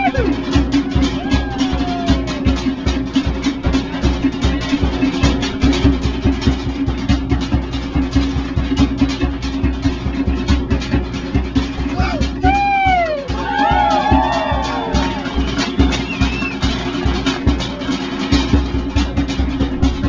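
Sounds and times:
fast driving drum music: 0.0s - 20.0s
high gliding shouts: 12.0s - 15.8s.

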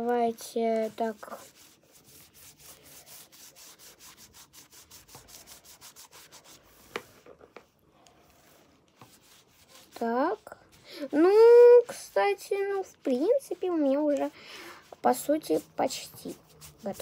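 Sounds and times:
drawing tool rubbing strokes: 0.4s - 7.2s, 8.2s - 17.0s.

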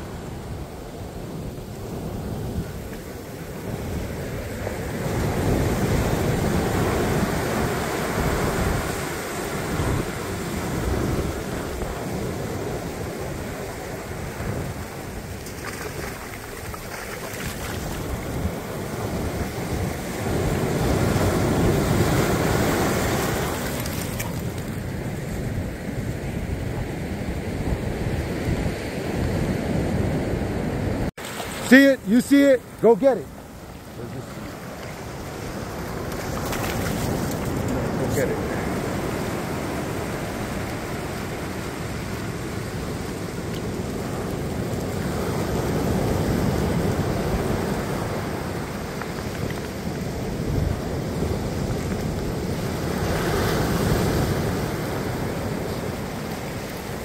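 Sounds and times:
ocean surf breaking: 0.0s - 57.0s.

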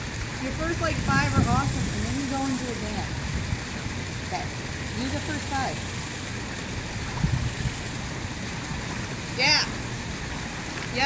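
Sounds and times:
pool water splashing: 0.0s - 11.0s.

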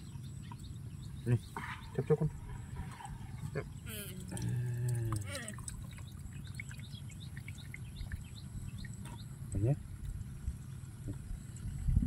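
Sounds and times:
faint dripping: 3.6s - 11.9s.

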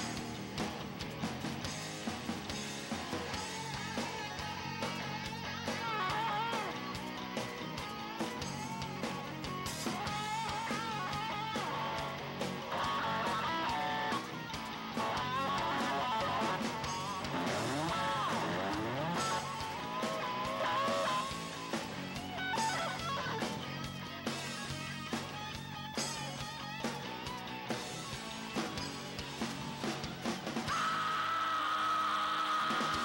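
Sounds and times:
bass guitar: 0.0s - 33.0s
drums: 0.0s - 33.0s
electric guitar lead: 0.0s - 33.0s.

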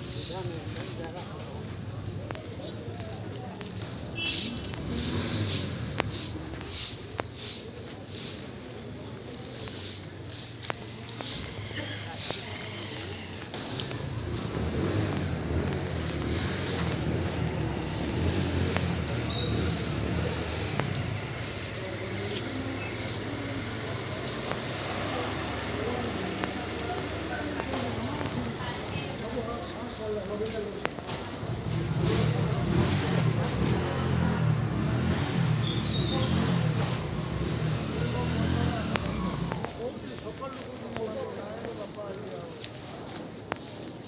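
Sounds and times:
people talking: 0.0s - 44.0s
vehicle engine hum: 9.5s - 40.3s.

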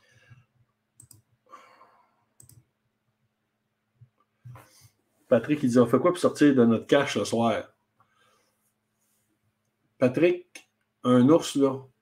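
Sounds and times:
faint clicks: 1.0s - 1.3s, 2.4s - 2.7s
soft breath: 8.0s - 9.3s.

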